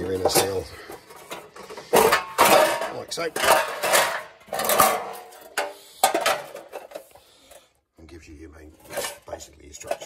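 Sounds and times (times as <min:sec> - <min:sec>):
metal panels knocking and clanking: 0:00.0 - 0:07.0.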